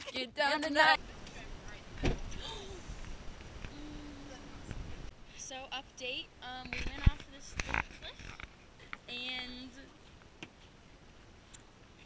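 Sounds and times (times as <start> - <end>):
person speaking: 0.0 - 1.0.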